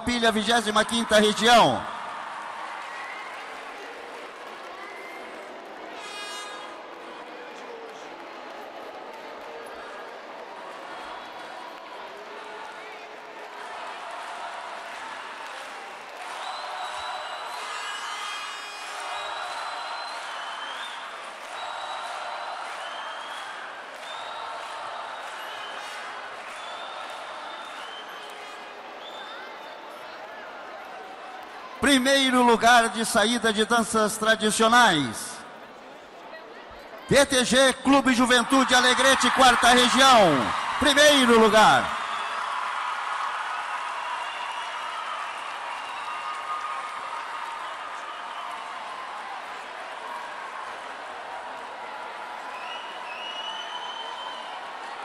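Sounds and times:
crowd cheering and shouting: 0.0 - 35.6, 37.1 - 55.0.

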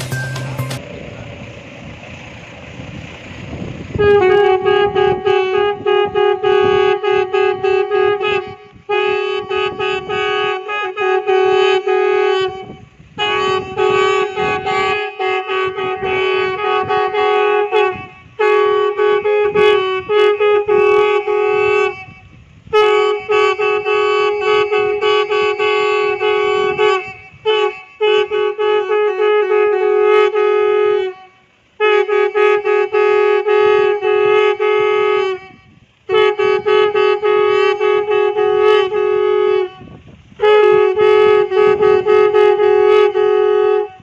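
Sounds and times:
conch shells blown: 4.0 - 44.0
conch shells blowing: 31.8 - 44.0.

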